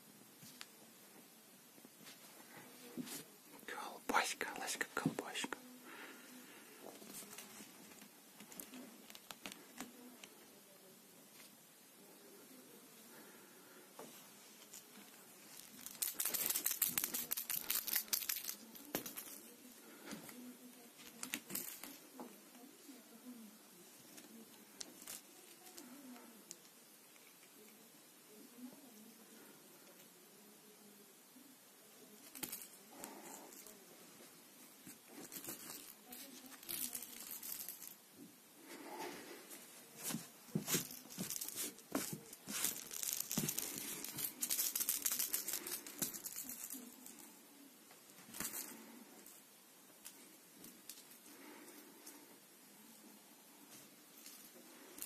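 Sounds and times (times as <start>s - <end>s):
plastic toy ball rattling: 15.5s - 19.4s, 35.2s - 38.0s, 40.7s - 47.2s.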